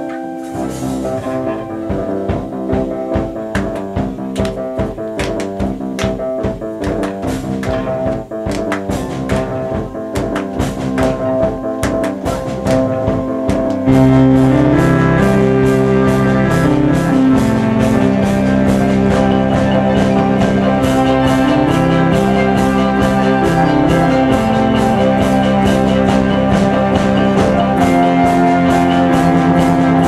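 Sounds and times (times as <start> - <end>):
violin: 0.0 - 3.4
keyboards: 0.0 - 30.0
steady drum beat: 0.5 - 30.0
heavy bass line: 0.6 - 30.0.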